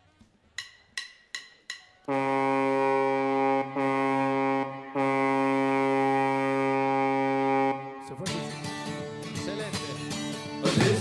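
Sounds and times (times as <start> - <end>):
deep ship's horn blasts: 2.1 - 8.1.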